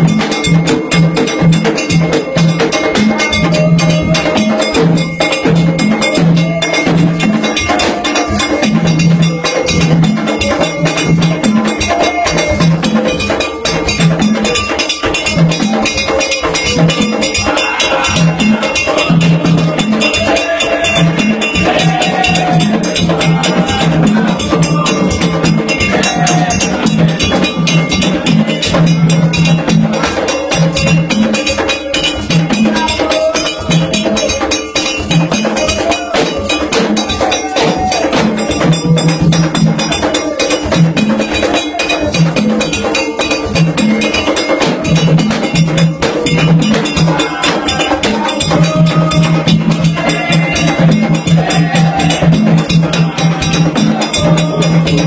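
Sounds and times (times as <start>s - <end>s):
bell-like metal percussion: 0.0s - 55.0s
drums: 0.0s - 55.0s.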